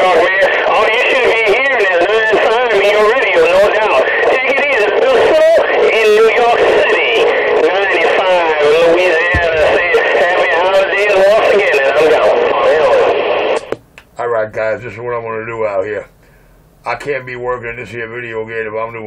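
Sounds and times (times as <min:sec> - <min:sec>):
voice over radio speaker: 0:00.0 - 0:13.7.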